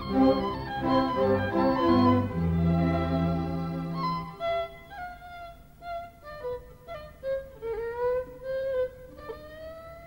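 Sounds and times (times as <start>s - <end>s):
violin melody with sliding notes: 0.0s - 10.0s.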